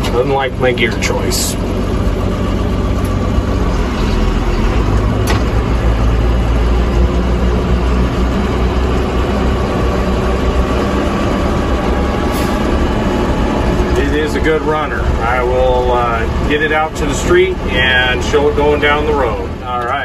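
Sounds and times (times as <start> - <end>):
tractor diesel engine under load: 0.0 - 20.0.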